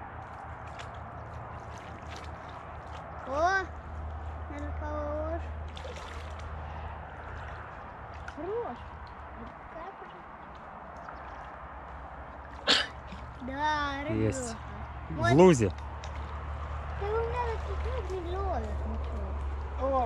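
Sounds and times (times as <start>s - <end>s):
low background hum: 0.0s - 20.0s.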